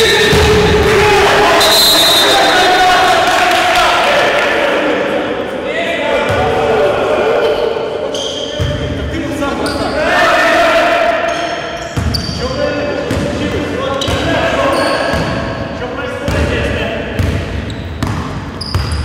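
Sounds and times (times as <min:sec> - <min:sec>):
players calling out: 0:00.0 - 0:16.8
basketball bouncing on gym floor: 0:17.2 - 0:19.0.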